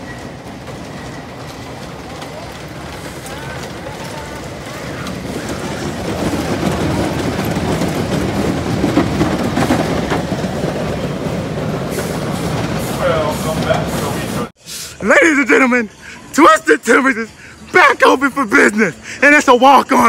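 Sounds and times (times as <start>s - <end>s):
roller coaster wheels rumbling: 0.0s - 14.5s
faint riders' voices: 1.4s - 8.2s.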